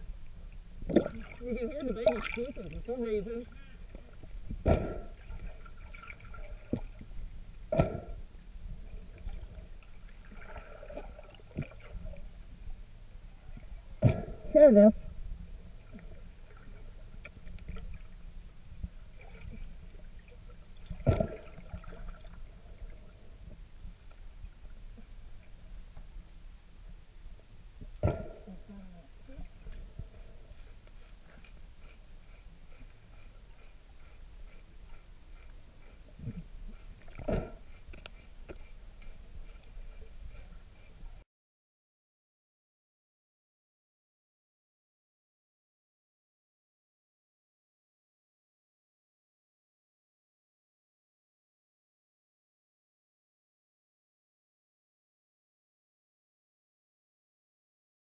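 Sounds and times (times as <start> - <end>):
low underwater rumble: 0.0 - 41.2.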